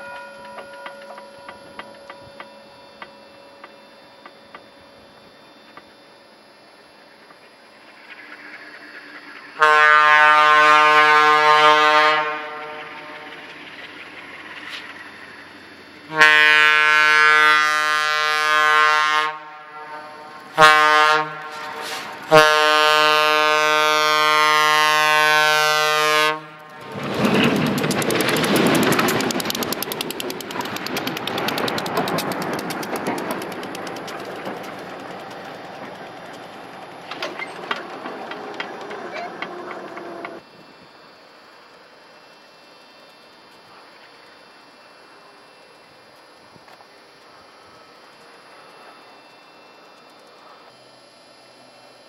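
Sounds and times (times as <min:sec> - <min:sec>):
train rushing past: 0:07.7 - 0:40.5
locomotive air horn blasts: 0:09.6 - 0:13.0, 0:16.1 - 0:27.0
flying snow: 0:20.4 - 0:23.5.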